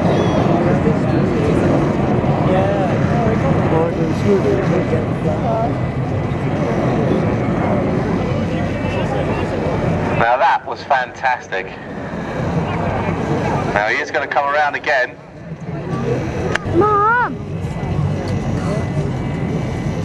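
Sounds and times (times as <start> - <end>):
jet airliner flying overhead: 0.0 - 20.0.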